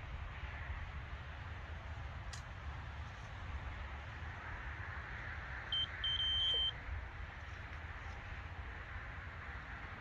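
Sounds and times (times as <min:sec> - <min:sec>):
bite alarm beeping: 0:05.8 - 0:06.7.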